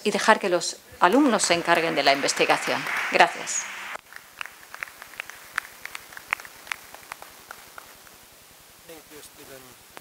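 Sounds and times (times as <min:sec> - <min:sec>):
audience clapping: 0:01.1 - 0:08.2.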